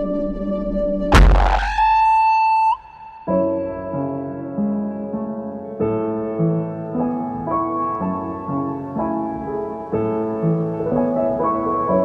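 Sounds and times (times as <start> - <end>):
steady high electronic tone: 1.1 - 3.4
downward sweeping noise burst: 1.1 - 3.6.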